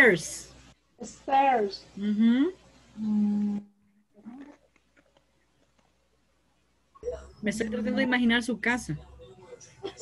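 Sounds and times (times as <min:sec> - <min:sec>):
woman humming: 0:02.0 - 0:04.6.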